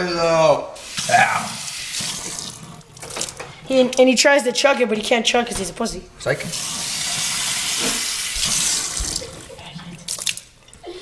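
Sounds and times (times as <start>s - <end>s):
water running from a tap: 0.8s - 3.4s, 6.4s - 10.7s.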